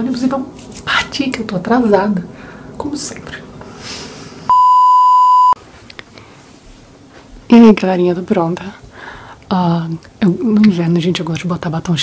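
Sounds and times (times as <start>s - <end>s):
high-pitched censor bleep: 4.5s - 5.6s.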